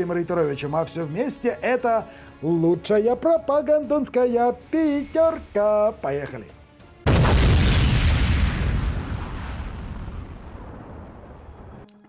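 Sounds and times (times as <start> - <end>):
deep boom with rumbling tail: 7.1 - 11.8.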